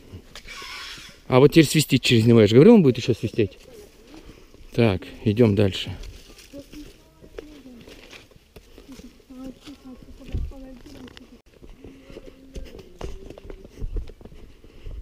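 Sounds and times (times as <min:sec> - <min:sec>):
footsteps on dirt trail: 0:03.1 - 0:15.0.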